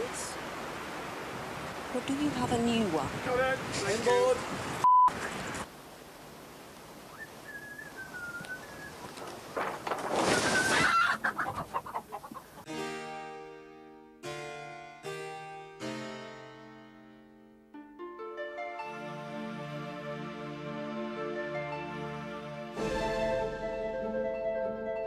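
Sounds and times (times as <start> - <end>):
chicken calling: 10.2 - 12.7
harpsichord music: 12.7 - 25.0.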